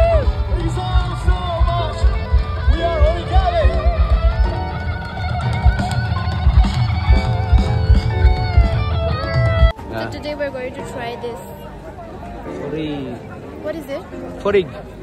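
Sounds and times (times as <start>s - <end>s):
thumping bass beat: 0.0s - 9.8s
live band music: 0.0s - 11.4s
electric guitar: 0.0s - 11.8s
crowd chatter: 0.0s - 15.0s.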